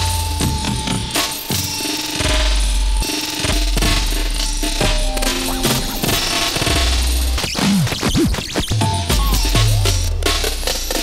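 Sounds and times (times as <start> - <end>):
electronic club music: 0.0 - 11.0
swooping scratching glides: 5.2 - 11.0.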